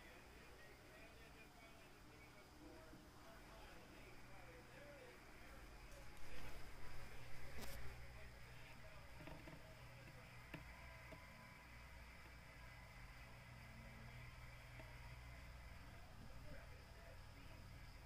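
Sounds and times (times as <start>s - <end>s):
faint electrical hum: 0.0s - 18.0s.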